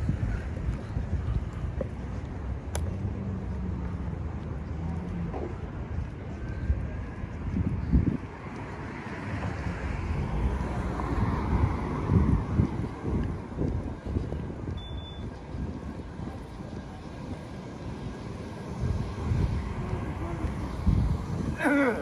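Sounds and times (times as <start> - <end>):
cars passing: 0.0 - 22.0
wind rumbling on microphone: 0.0 - 22.0.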